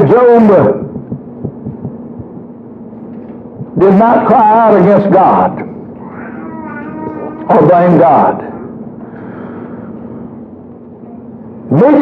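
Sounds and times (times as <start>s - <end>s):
steady low hum: 0.0s - 12.0s
faint soft low thumps: 0.9s - 2.5s.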